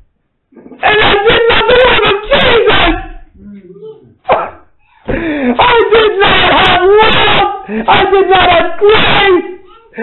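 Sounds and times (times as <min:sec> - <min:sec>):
man wailing emotionally: 0:00.6 - 0:10.0.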